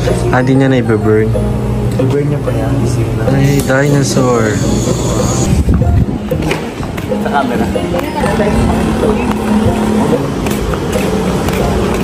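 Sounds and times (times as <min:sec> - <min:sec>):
traffic noise: 0:00.0 - 0:12.0
vehicle engine humming: 0:00.0 - 0:12.0.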